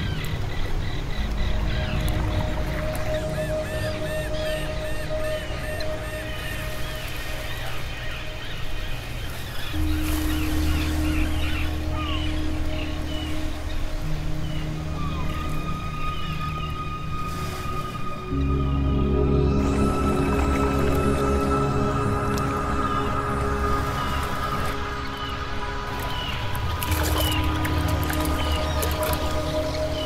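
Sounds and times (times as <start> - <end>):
ambient music with low chords: 0.0 - 30.0
high chirping glides: 0.0 - 30.0.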